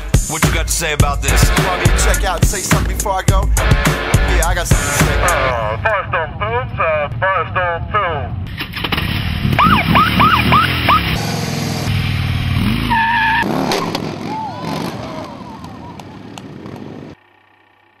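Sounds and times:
music: 0.0s - 5.7s
vehicle sounds: 0.8s - 18.0s
voices: 4.3s - 8.4s, 13.8s - 16.9s.

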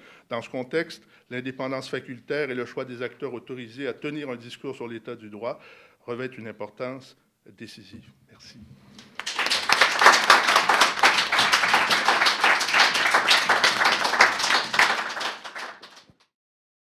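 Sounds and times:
audience applauding: 9.0s - 16.2s.

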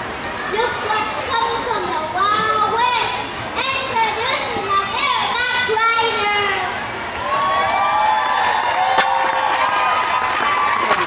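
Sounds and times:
audience cheering: 7.1s - 11.0s.

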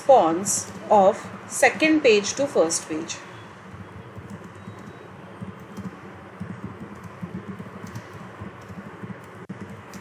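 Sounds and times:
low background hum: 0.0s - 10.0s
computer keyboard key clicks: 3.7s - 10.0s.

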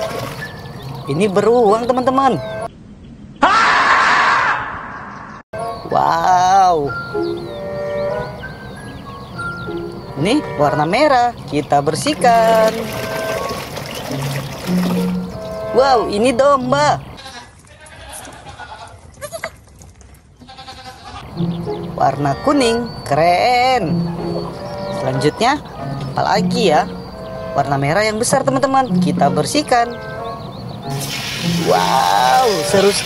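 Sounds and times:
long loud scream: 3.4s - 4.9s
goat kids bleating: 17.2s - 19.6s, 20.4s - 21.3s.

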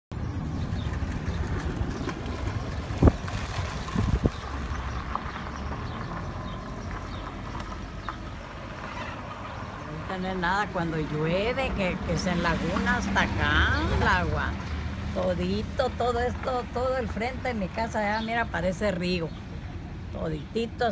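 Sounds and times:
street rumble and hiss: 0.1s - 20.9s
vehicle sound: 0.1s - 20.9s.

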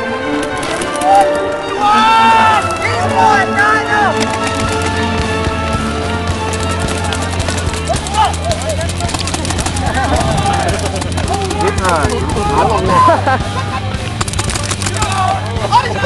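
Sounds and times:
players shouting: 0.0s - 16.0s
paintball markers firing: 4.2s - 12.9s, 14.0s - 15.5s.

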